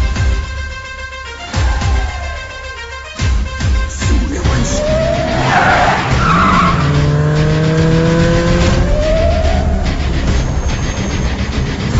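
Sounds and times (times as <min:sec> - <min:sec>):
tyres skidding: 0:01.2 - 0:11.9
car engine revving: 0:03.9 - 0:11.9.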